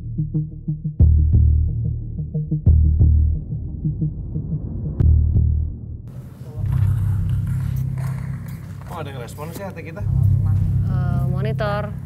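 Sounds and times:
throbbing low bass drone: 0:00.0 - 0:08.7, 0:10.0 - 0:12.0
deep hits: 0:01.0 - 0:09.3.

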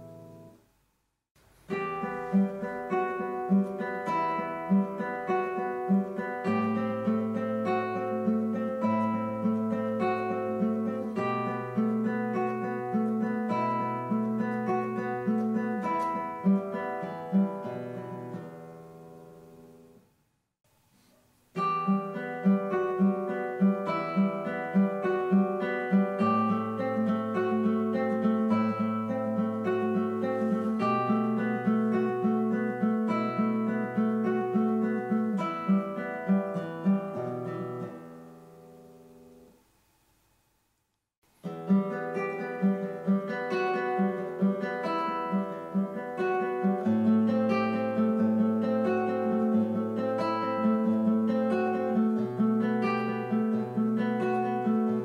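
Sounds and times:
classical guitar fingerstyle: 0:00.0 - 0:00.6, 0:01.4 - 0:20.0, 0:21.0 - 0:39.6, 0:41.3 - 0:55.0.

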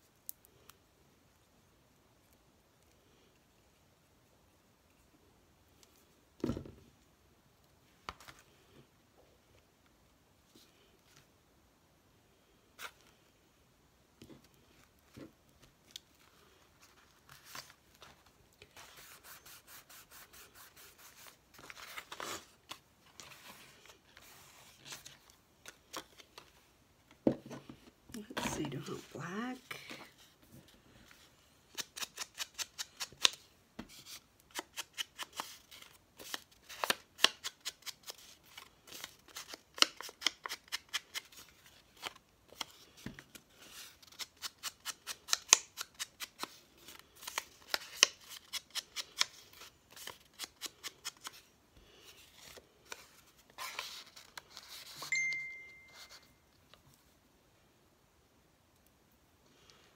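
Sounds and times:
paper rustling: 0:14.7 - 0:26.6, 0:33.0 - 0:55.1
scissors snipping paper: 0:31.7 - 0:33.4.

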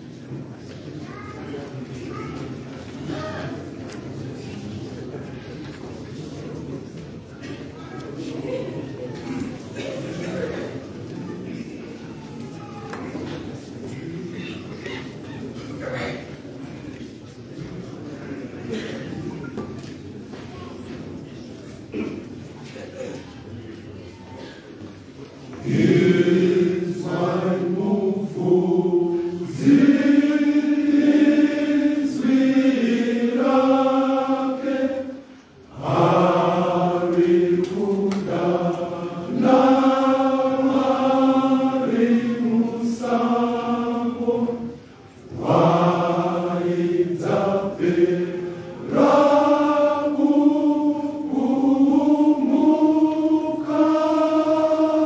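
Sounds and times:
men's choir singing: 0:25.6 - 0:55.0.

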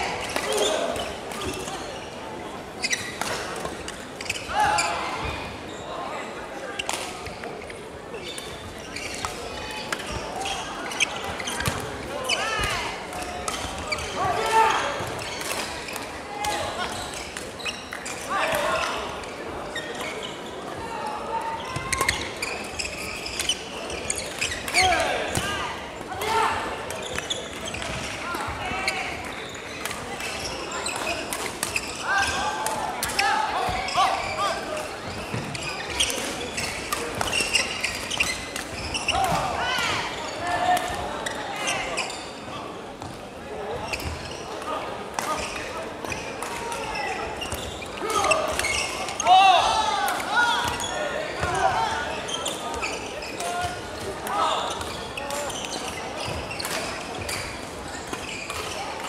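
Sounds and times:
background chatter of voices: 0:00.0 - 0:59.0.

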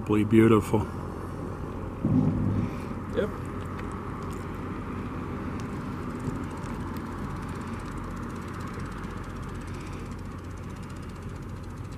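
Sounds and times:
steady outdoor rumble: 0:00.0 - 0:11.9.

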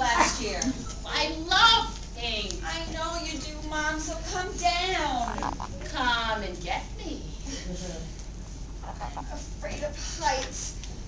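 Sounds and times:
high-pitched wordless vocal cries: 0:05.1 - 0:05.8.

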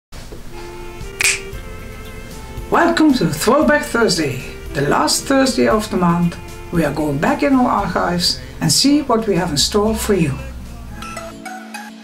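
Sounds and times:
soft background music: 0:00.4 - 0:12.0
finger snap: 0:01.1 - 0:01.6.

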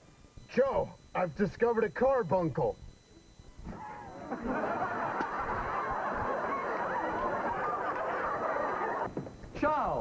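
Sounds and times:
studio audience laughing: 0:03.7 - 0:09.2.

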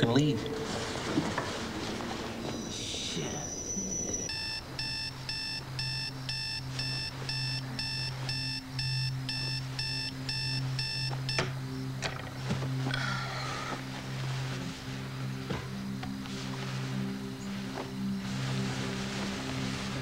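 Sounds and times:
background music hum: 0:00.0 - 0:20.0
alarm clock beeping: 0:02.5 - 0:12.0.

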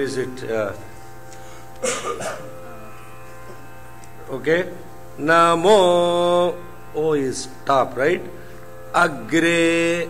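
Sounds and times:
steady musical drone: 0:00.0 - 0:10.0.

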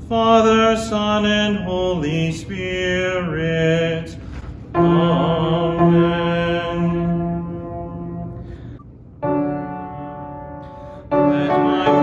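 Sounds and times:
man chanting: 0:11.1 - 0:12.0.

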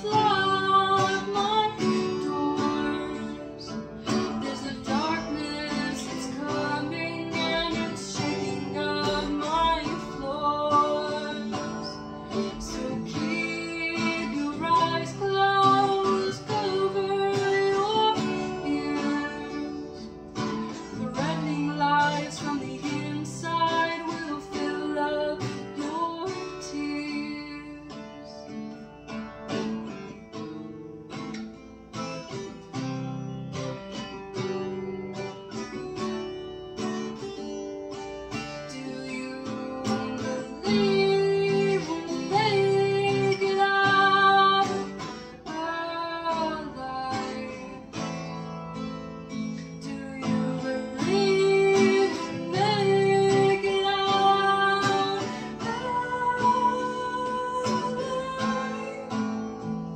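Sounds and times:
woman singing: 0:00.0 - 0:30.2, 0:36.2 - 0:59.9
acoustic guitar strummed: 0:00.0 - 0:59.9.

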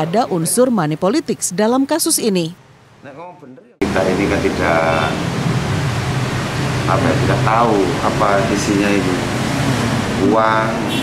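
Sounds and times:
electric fan running: 0:03.8 - 0:10.6.

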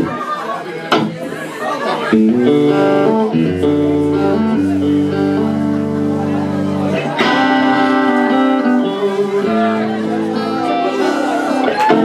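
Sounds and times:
audience voices chattering: 0:00.0 - 0:12.0.

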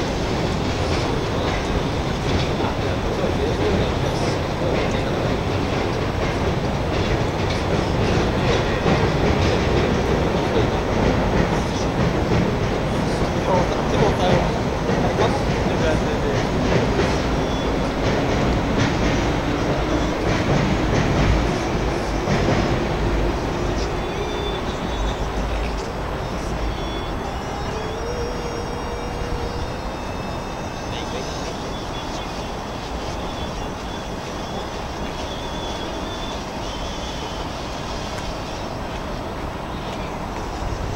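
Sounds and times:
train rumbling past: 0:00.0 - 0:40.9.

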